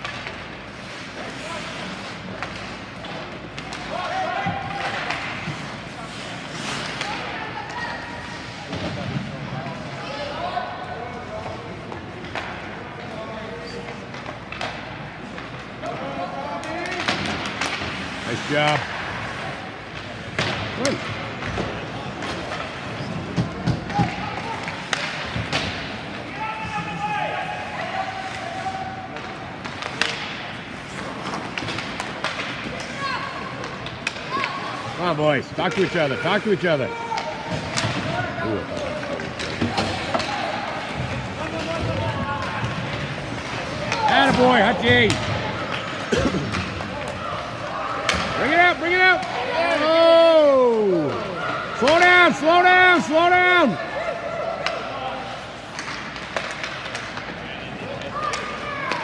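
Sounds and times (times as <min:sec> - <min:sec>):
spectators talking: 0:00.1 - 0:59.0
puck and sticks knocking: 0:20.0 - 0:25.9.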